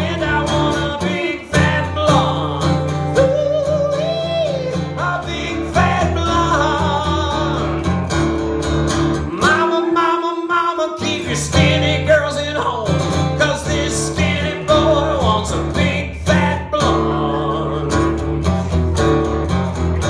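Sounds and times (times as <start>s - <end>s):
man singing: 0.0s - 8.0s, 9.3s - 18.5s
acoustic guitar strumming: 0.0s - 20.0s.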